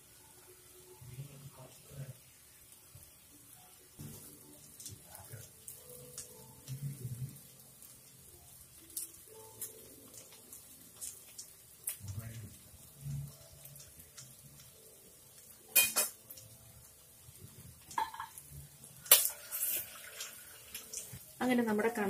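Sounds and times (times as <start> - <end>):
food sizzling in a pot: 0.0 - 22.0.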